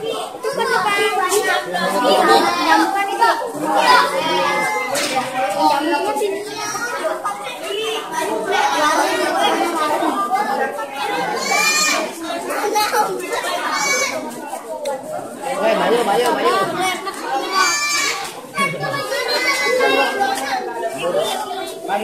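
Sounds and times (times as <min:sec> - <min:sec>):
children chattering: 0:00.0 - 0:22.0.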